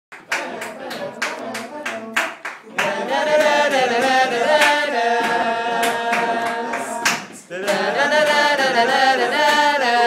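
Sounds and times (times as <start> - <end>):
group of voices singing: 0.1 - 10.0
people clapping a beat: 0.1 - 10.0.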